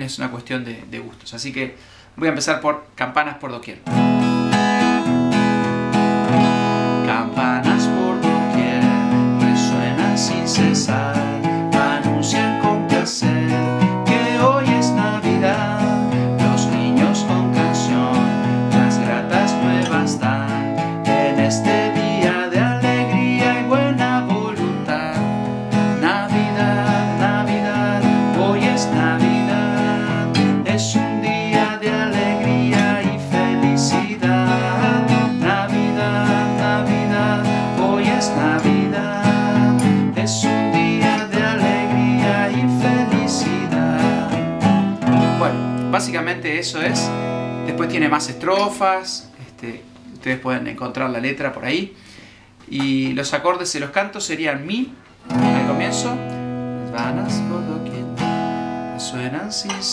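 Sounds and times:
acoustic guitar strumming: 3.8 - 51.0, 55.2 - 59.9
man singing: 6.8 - 49.8, 56.9 - 58.2, 59.0 - 59.9.

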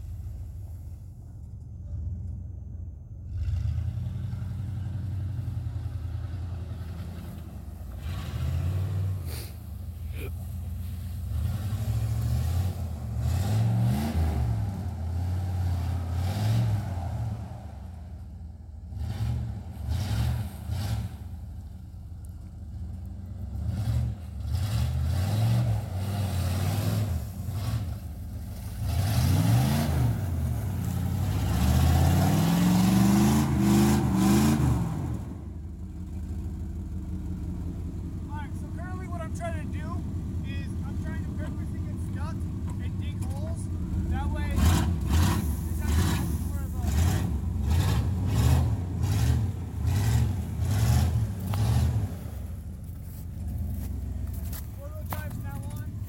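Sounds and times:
pickup engine revving: 3.3 - 56.0
tires spinning in snow: 3.3 - 56.0.

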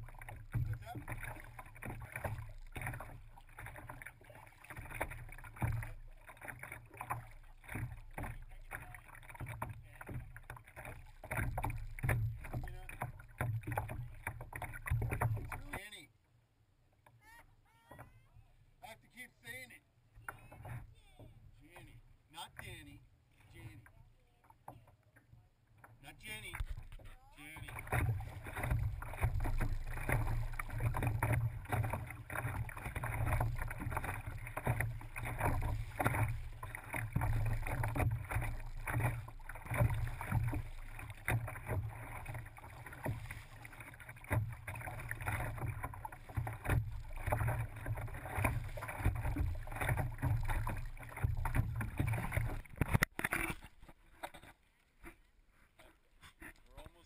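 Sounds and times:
water splashing against kayak hull: 0.0 - 16.0, 20.0 - 57.0.

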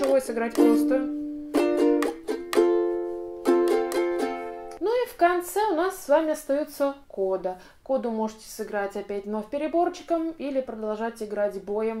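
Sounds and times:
ukulele chords strummed: 0.0 - 4.8.

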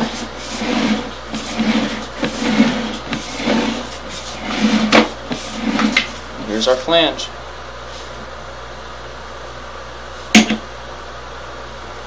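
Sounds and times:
cable scraping in drain: 0.0 - 6.2.

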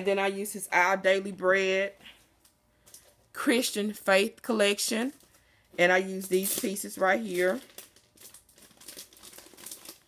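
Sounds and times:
plastic sleeve crinkling: 4.9 - 10.0.

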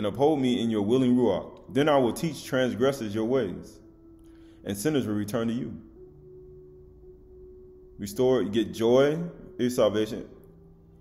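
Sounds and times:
sustained pure tone: 0.0 - 11.0.

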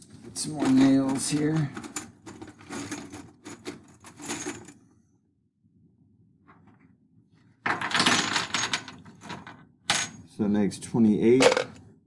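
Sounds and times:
metal nails clinking and rattling: 0.6 - 4.8.

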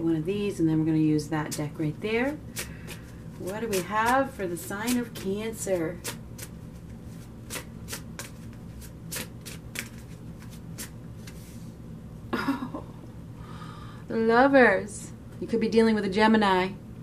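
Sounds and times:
cards being shuffled: 2.4 - 11.7.

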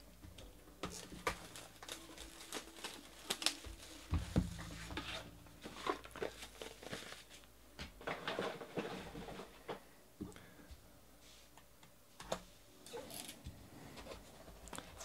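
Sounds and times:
wrapper crinkling: 0.8 - 8.9
cardboard rustling and scraping: 0.8 - 9.8.

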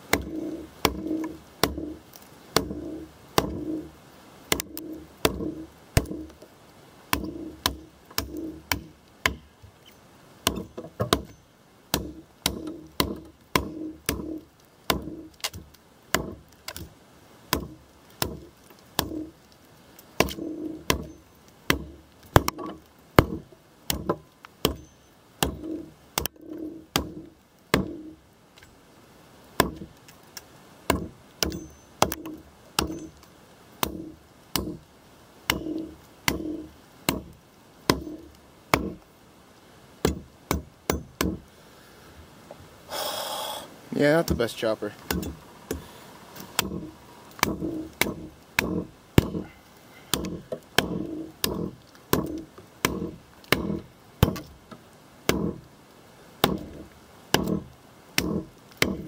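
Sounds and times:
knife chopping into log: 3.4 - 3.7, 4.5 - 6.3, 50.1 - 54.5, 56.4 - 59.0.

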